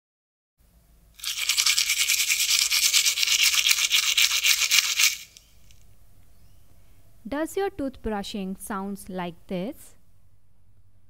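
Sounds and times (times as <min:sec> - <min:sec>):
toothbrush scrubbing teeth: 0:01.2 - 0:05.4.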